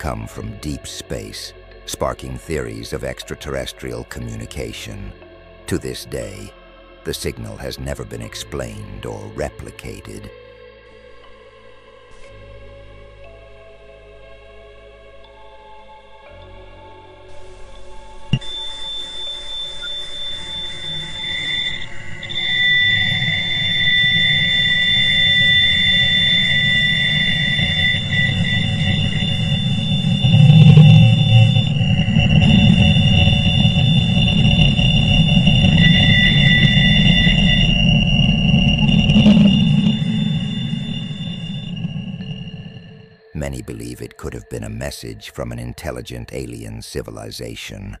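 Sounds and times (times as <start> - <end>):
high whistling tones: 18.3 - 47.8
low rumbling noise: 20.6 - 48.0.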